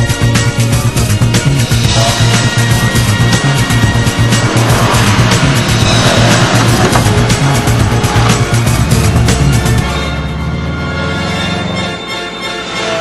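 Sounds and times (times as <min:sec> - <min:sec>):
soundtrack music with steady beat: 0:00.0 - 0:13.0
car engine running hard: 0:00.1 - 0:12.8
tyres sliding on loose dirt: 0:02.0 - 0:09.8.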